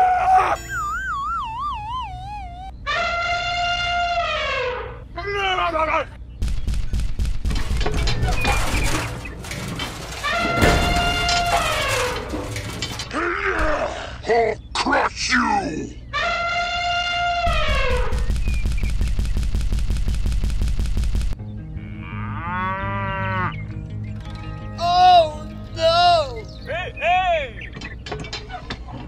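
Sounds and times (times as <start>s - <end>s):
long held falling calls: 0.4s - 3.3s
wobbling whistle-like tone: 0.6s - 2.8s
crashing shattering noise: 7.4s - 13.2s.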